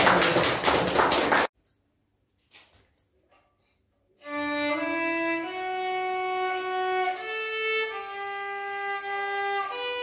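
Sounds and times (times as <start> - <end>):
small audience clapping: 0.0 - 1.6.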